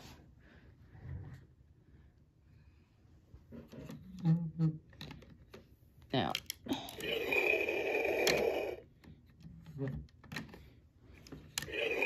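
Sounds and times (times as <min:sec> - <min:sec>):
clicks of toy being handled: 0:04.9 - 0:07.2, 0:08.1 - 0:12.0.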